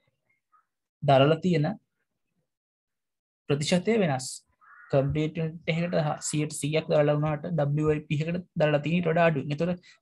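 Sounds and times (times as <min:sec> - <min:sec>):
man speaking: 0:03.5 - 0:10.0.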